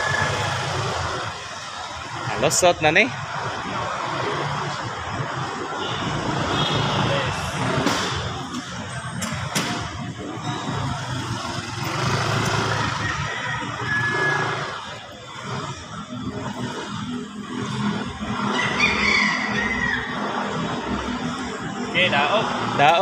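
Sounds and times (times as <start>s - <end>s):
motor scooter engine: 0.0s - 23.0s.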